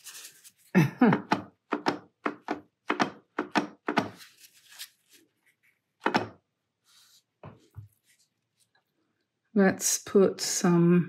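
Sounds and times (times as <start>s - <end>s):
woman laughing: 0.7s - 1.3s.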